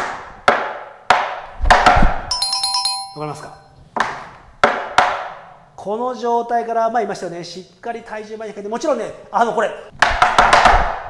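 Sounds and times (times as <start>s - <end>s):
glittering electronic chime: 2.3s - 3.7s
tap shoes striking wooden board: 4.0s - 5.4s.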